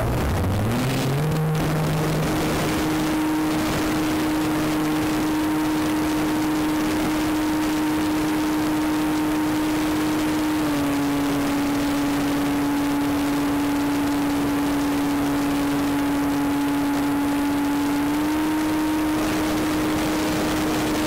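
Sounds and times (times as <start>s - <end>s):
electric motor whine: 0.0s - 21.0s
wind rush: 0.0s - 21.0s.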